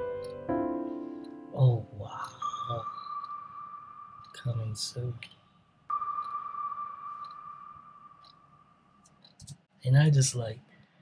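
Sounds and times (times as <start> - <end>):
steady high electronic tone: 0.6 - 9.3.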